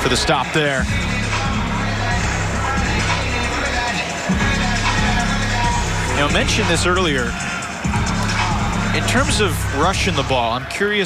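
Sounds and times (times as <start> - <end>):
heavy bass music over loudspeakers: 0.0 - 11.0.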